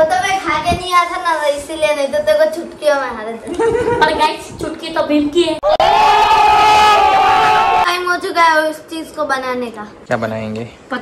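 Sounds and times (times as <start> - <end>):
group of people yelling ohhh: 5.6 - 7.9.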